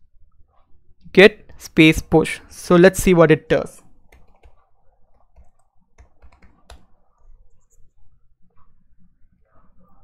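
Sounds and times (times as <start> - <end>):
computer keyboard keystrokes: 4.1 - 6.9.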